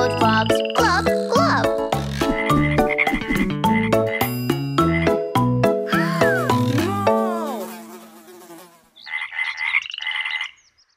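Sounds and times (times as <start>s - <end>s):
music: 0.0s - 7.5s
cartoon frog croaking: 0.6s - 4.2s, 5.9s - 7.9s.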